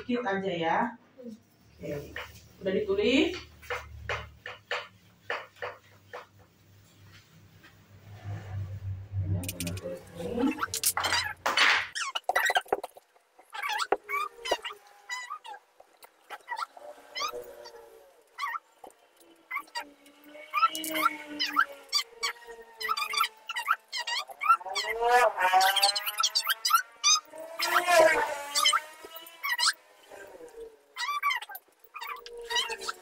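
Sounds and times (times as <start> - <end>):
marker taps and clicks: 3.3 - 6.4
marker squeaking on whiteboard: 9.3 - 30.3, 31.0 - 33.0.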